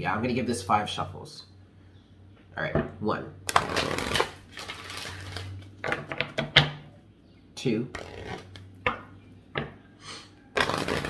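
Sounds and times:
cards being shuffled: 0:03.5 - 0:06.1, 0:08.0 - 0:08.7, 0:10.6 - 0:11.0.

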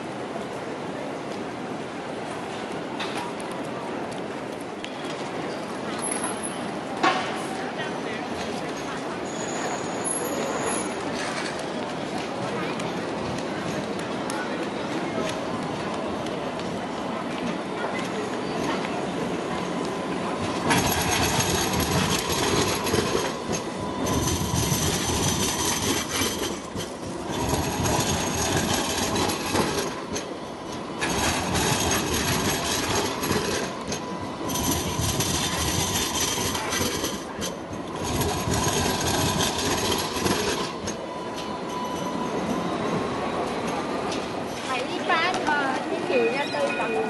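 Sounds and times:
tram wheels running over rails: 0:00.0 - 0:47.0
high-pitched wheel squeal: 0:09.2 - 0:11.4, 0:20.7 - 0:44.6.

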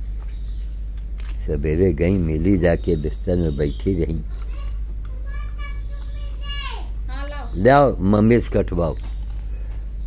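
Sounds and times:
child calling: 0:04.3 - 0:07.6.

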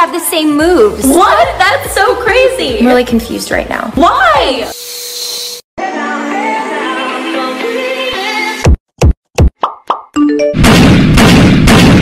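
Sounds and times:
music: 0:00.0 - 0:04.7, 0:05.8 - 0:08.8.

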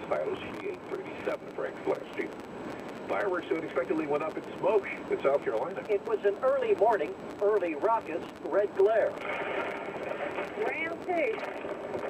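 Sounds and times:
newsreader speaking on radio: 0:00.0 - 0:12.0
radio static hiss: 0:00.0 - 0:12.0.

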